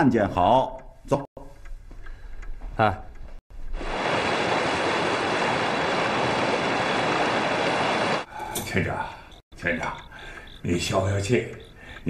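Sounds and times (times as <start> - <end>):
heavy rain pouring: 3.8 - 8.3.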